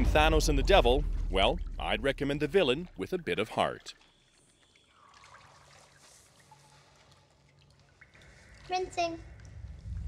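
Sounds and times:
bathwater trickling: 0:00.0 - 0:10.0.

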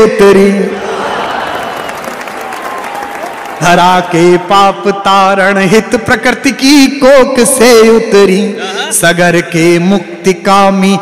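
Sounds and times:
audience applauding: 0:01.0 - 0:03.8.

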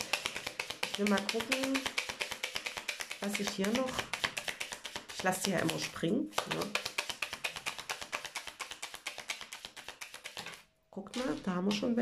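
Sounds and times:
playing cards shuffling: 0:00.0 - 0:12.0.

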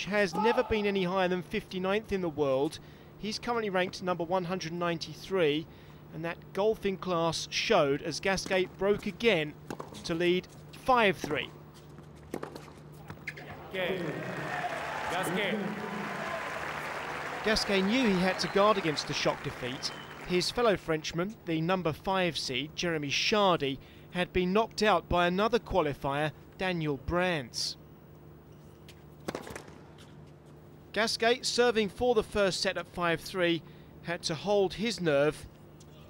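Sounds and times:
crowd applause: 0:13.5 - 0:20.7
racket hitting ball: 0:29.2 - 0:29.9.

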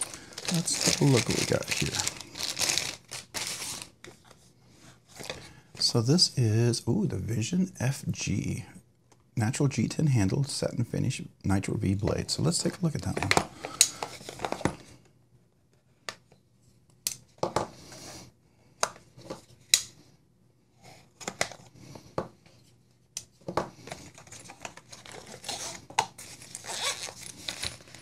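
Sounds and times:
packaging rustling: 0:00.0 - 0:04.0, 0:24.0 - 0:28.0.

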